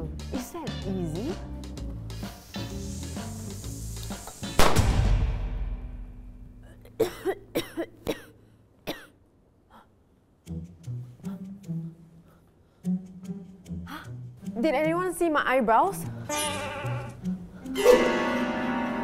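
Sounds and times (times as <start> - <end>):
loud bang: 4.6 - 6.5
woman coughing: 6.6 - 9.2.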